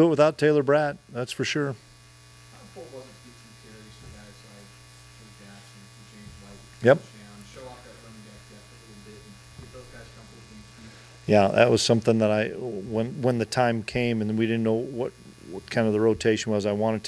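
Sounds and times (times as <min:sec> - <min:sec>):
low electrical hum: 0:00.0 - 0:17.0.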